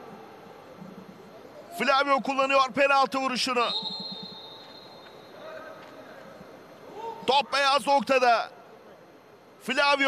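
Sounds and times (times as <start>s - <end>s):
faint stadium ambience: 0.0s - 10.0s.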